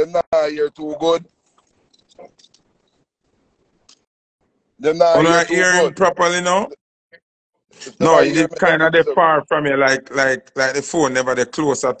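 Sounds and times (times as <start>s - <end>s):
soft voice sound: 0.0s - 1.2s, 7.8s - 12.0s.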